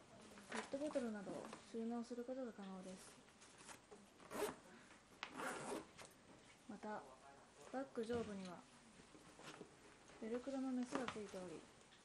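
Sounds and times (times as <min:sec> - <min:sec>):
backpack zipper being pulled: 0:04.3 - 0:04.6, 0:05.3 - 0:05.9.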